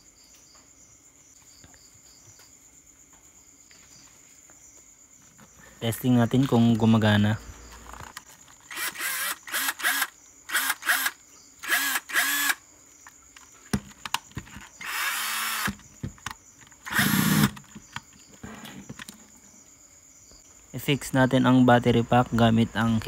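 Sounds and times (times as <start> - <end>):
cordless drill motor bursts: 8.6 - 12.6, 14.8 - 15.8, 16.8 - 17.6.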